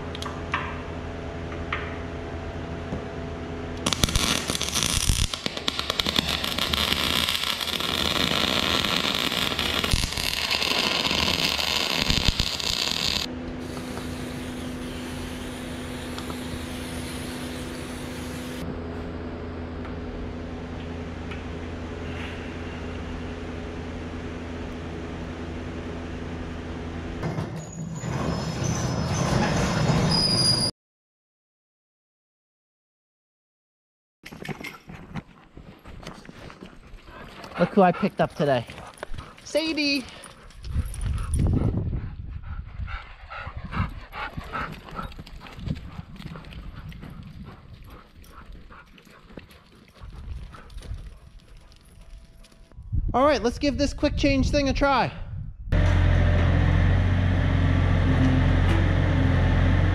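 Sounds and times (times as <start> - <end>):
welding arc crackling: 3.8 - 18.6
spray can hissing: 11.2 - 18.6.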